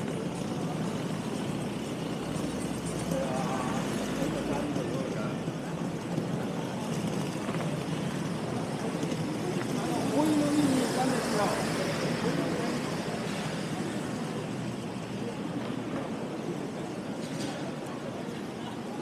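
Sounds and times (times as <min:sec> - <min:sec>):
murmuring voices: 0:00.0 - 0:19.0
traffic hum: 0:00.0 - 0:19.0.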